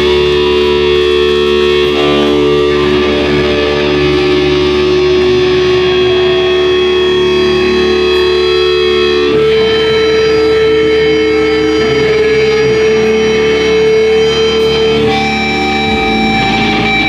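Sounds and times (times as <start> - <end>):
distorted electric guitar notes: 0.0 - 17.0.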